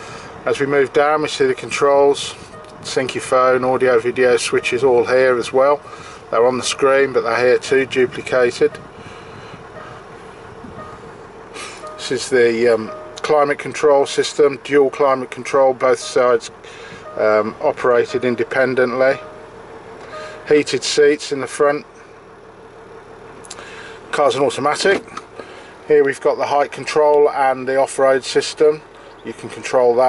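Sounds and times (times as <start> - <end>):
diesel engine idling in cabin: 0.0 - 30.0.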